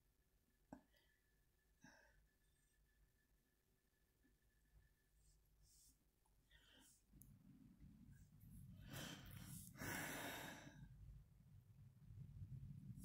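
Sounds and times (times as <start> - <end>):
faint breathing: 5.2 - 7.2, 8.5 - 11.2.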